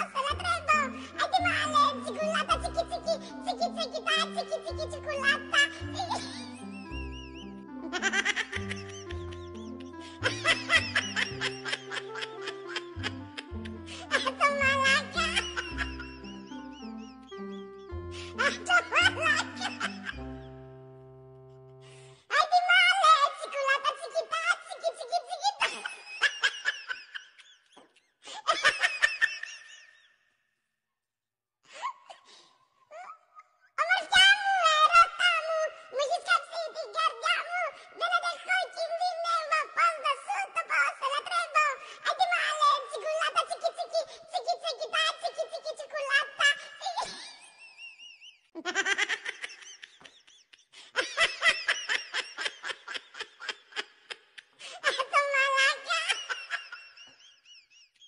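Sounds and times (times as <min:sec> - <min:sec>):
children giggling: 0:05.1 - 0:20.5, 0:25.6 - 0:30.0, 0:46.3 - 0:58.0.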